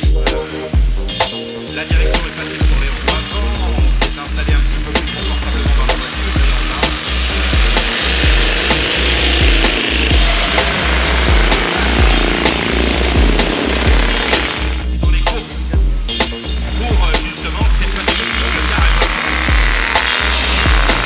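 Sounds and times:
backing track with bass beat: 0:00.0 - 0:21.0
car engine passing: 0:02.2 - 0:14.9.

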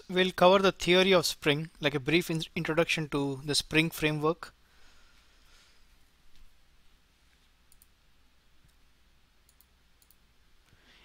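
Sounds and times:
low steady hum: 0:00.0 - 0:11.0
computer mouse clicks: 0:07.7 - 0:08.0, 0:09.5 - 0:10.2.

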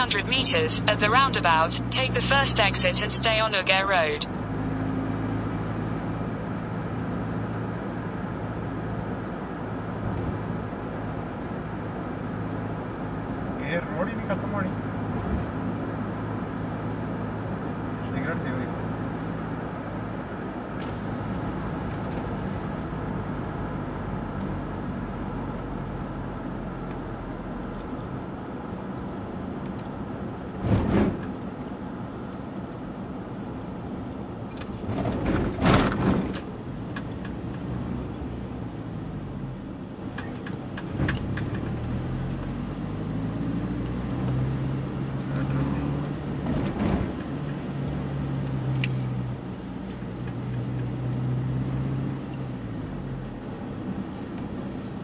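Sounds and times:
car engine and tyre noise: 0:00.0 - 0:55.0.

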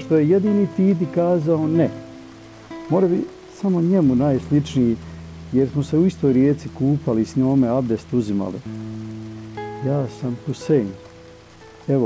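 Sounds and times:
man reading aloud: 0:00.0 - 0:02.1, 0:02.9 - 0:08.7, 0:09.8 - 0:11.0
quiet background music: 0:00.0 - 0:12.0.

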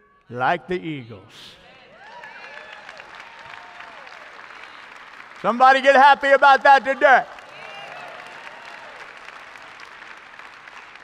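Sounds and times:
congregation applauding: 0:01.9 - 0:11.0.

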